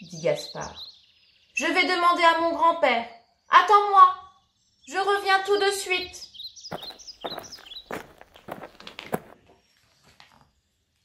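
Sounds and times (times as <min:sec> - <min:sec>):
footsteps walking: 0:06.7 - 0:09.4.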